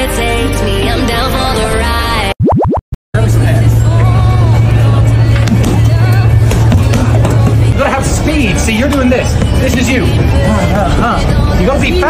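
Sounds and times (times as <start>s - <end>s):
rising electronic sweeps: 2.4s - 2.9s
voices: 3.2s - 12.0s.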